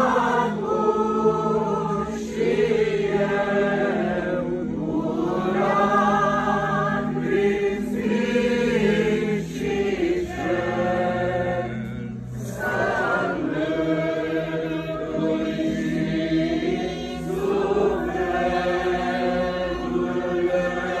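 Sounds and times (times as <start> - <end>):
group singing a hymn unaccompanied: 0.0 - 21.0.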